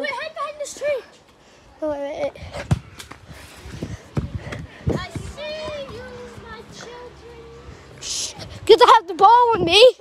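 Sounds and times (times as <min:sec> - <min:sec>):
footsteps: 0:02.5 - 0:08.6.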